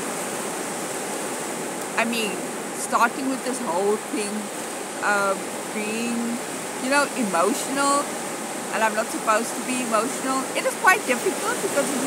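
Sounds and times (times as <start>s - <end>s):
ocean surf: 0.0s - 12.0s.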